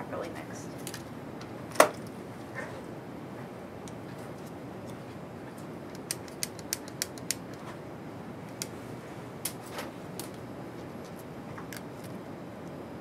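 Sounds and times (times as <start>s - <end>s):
room noise: 0.0s - 13.0s.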